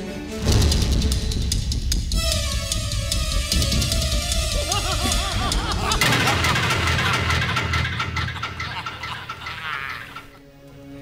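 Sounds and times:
rapid drum strokes: 0:00.4 - 0:10.3
men laughing loudly: 0:04.4 - 0:10.4.

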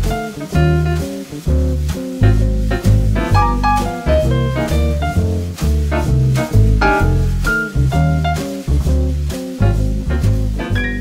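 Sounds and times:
jazzy swing instrumental music: 0:00.0 - 0:11.0.

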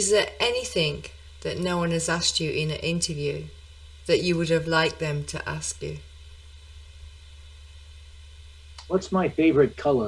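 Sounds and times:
faint hiss: 0:00.0 - 0:10.0
steady low hum: 0:00.0 - 0:10.0.

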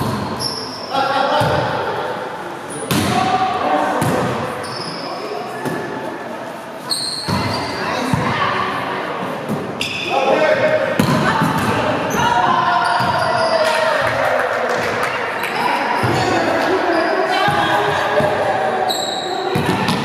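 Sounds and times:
players' voices echoing: 0:00.0 - 0:20.0.

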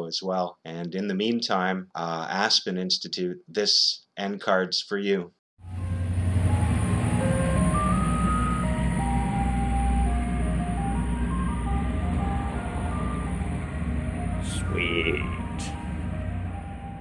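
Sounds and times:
ice cream truck jingle: 0:05.6 - 0:17.0
truck engine humming: 0:05.6 - 0:17.0.

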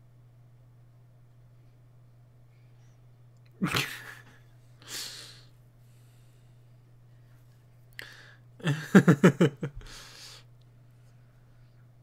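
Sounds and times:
man laughing: 0:03.6 - 0:04.5, 0:08.6 - 0:10.0.

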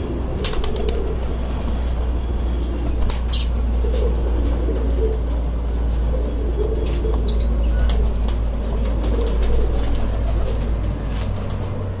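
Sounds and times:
pigeons cooing: 0:00.0 - 0:11.4.

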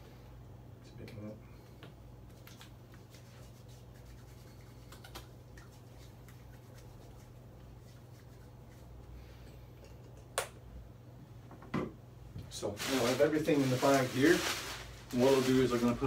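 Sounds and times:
low room hum: 0:00.0 - 0:16.0
hands rubbing together: 0:02.3 - 0:09.1.

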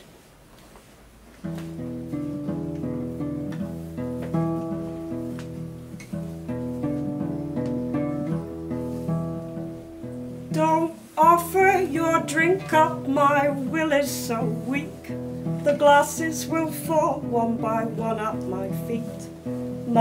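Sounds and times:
solo acoustic guitar: 0:01.4 - 0:20.0.

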